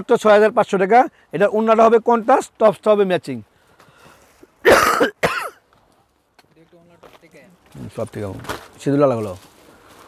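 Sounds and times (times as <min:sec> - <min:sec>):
person coughing: 0:04.6 - 0:05.6.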